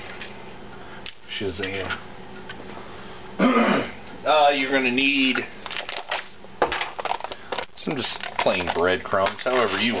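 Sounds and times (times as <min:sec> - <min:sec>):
man clearing his throat: 0:03.4 - 0:04.0.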